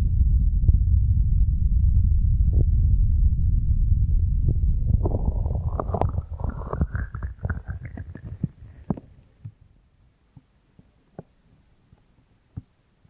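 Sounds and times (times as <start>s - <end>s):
breath blowing on microphone: 4.9s - 9.4s
crackly clicks of hands on microphone: 5.0s - 9.6s.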